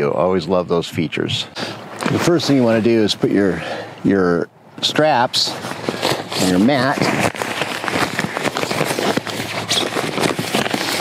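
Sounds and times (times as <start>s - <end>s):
nylon fabric crackling rustle: 4.9s - 11.0s.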